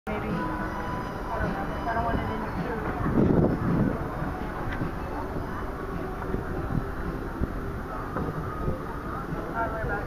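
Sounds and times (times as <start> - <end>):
faint voices: 0.1 - 10.0
steady low rumble: 0.1 - 10.0
gusty wind thumps: 2.0 - 5.2.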